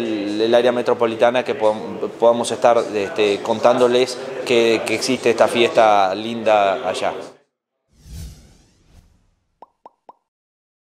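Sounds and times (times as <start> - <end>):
whoosh with low boom: 7.9 - 9.6.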